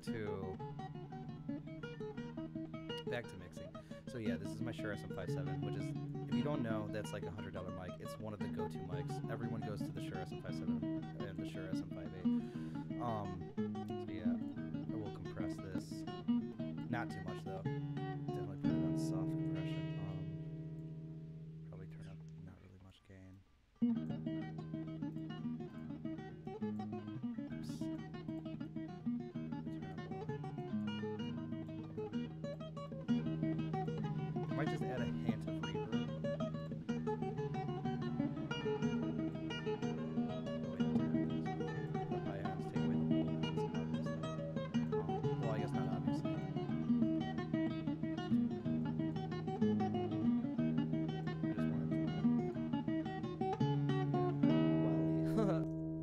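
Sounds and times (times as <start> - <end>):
acoustic fingerstyle guitar tune: 0.0 - 56.0.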